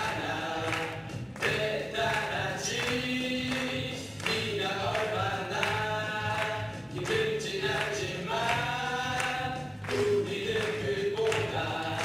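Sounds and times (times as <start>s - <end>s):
group singing: 0.0s - 12.0s
musical accompaniment: 0.0s - 12.0s.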